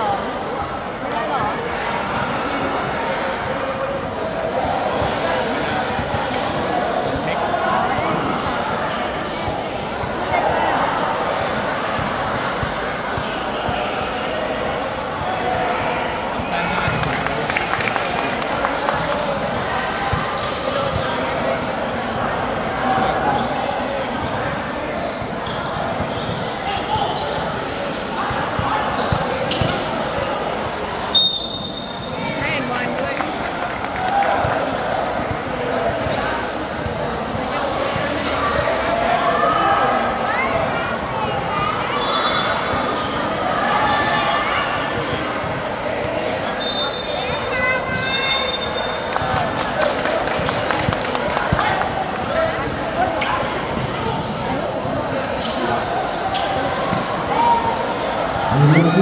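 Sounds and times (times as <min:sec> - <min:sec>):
referee's whistle blast: 0:31.1 - 0:32.0
din of voices: 0:58.5 - 0:59.0.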